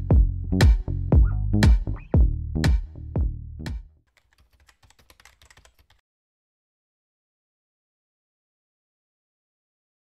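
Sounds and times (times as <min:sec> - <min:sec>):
faint rapid clicking: 0:04.1 - 0:06.0.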